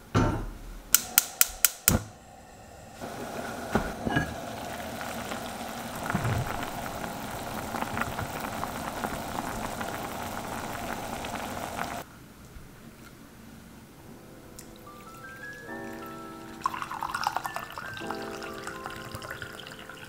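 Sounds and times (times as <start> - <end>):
water bubbling in a pot: 1.0 - 12.0, 16.5 - 20.0.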